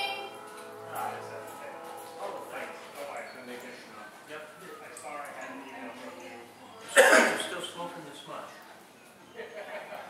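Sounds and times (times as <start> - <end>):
indistinct voices talking: 0.0 - 8.6.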